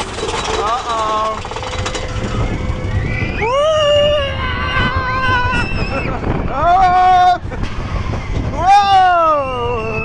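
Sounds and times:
roller coaster riders screaming: 0.0 - 10.0
roller coaster rumbling on track: 0.0 - 10.0.

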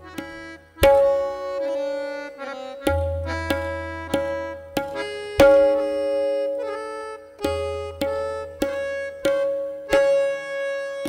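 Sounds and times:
harmonium melody: 0.0 - 11.0
tabla strokes: 0.0 - 11.0.

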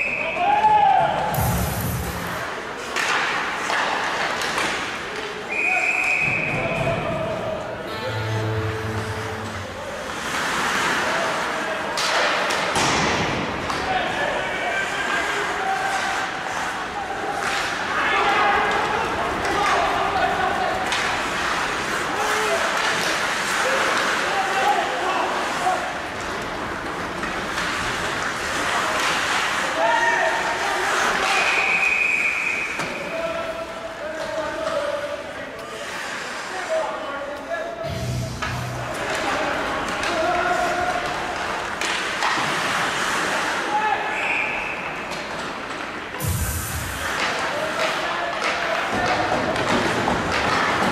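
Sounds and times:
referee's whistle: 5.5 - 6.6, 31.4 - 32.8, 44.2 - 44.9
players shouting: 13.8 - 26.2.

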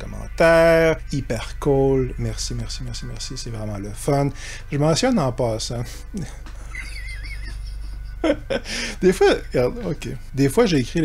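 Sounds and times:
steady low hum: 0.0 - 11.0
man laughing quietly: 6.2 - 9.0.

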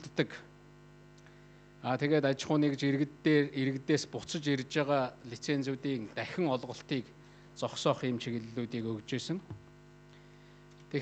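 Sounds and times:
man speaking: 0.0 - 0.5, 1.8 - 9.6
electrical mains hum: 0.0 - 11.0.

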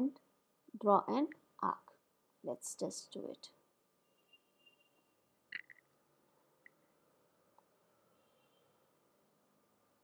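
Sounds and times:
faint high whine: 3.2 - 10.0.

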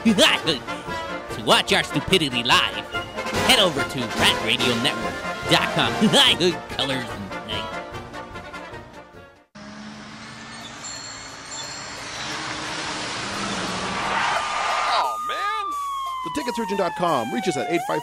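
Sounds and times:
road traffic noise: 0.0 - 18.0
police siren wailing: 11.5 - 18.0.

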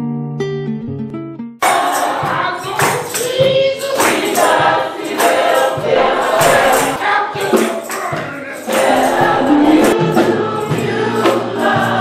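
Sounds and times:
congregation singing: 3.8 - 12.0.

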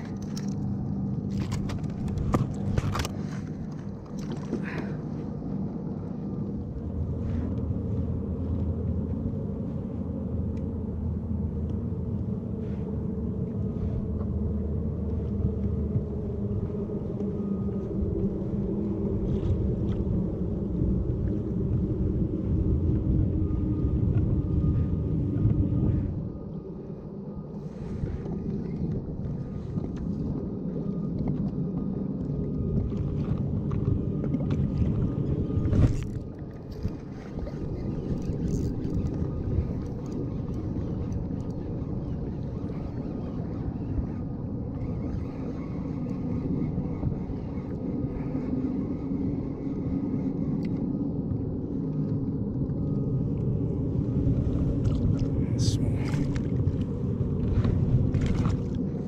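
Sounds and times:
wind and water rumble: 0.0 - 59.0.

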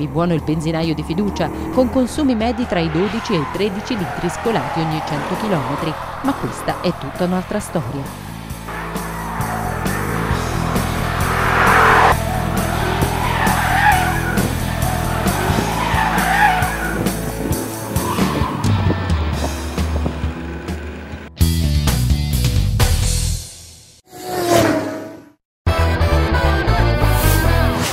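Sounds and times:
tyres squealing: 0.1 - 19.2
car engine revving hard: 1.1 - 21.2
rock music: 5.0 - 23.9, 25.7 - 27.9.

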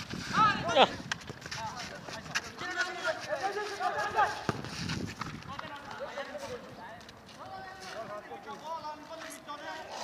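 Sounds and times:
footfalls on pavement: 0.0 - 9.7.

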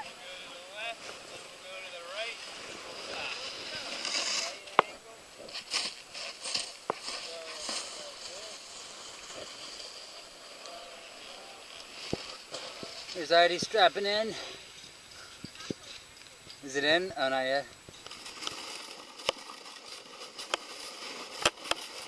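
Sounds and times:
rustling noise: 0.8 - 16.6, 17.9 - 22.0.

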